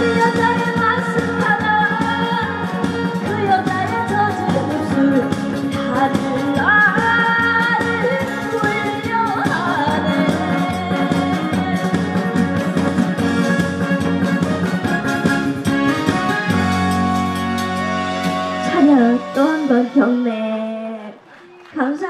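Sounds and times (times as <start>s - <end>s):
woman singing into a microphone: 0.0s - 13.0s, 18.6s - 21.2s
amplified band with steady beat: 0.0s - 21.0s.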